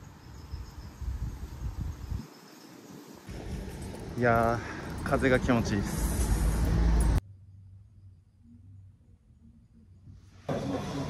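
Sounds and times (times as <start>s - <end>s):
wind buffeting microphone: 0.4s - 2.3s, 3.3s - 6.8s.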